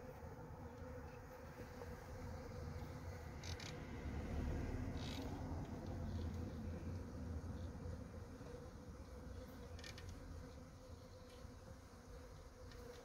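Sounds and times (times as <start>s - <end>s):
bee swarm humming: 0.0s - 13.0s
low rumble: 3.2s - 8.2s.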